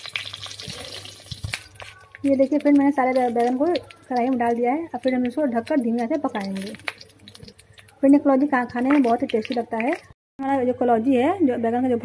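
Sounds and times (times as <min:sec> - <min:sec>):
oil sizzling and crackling: 0:00.0 - 0:10.2.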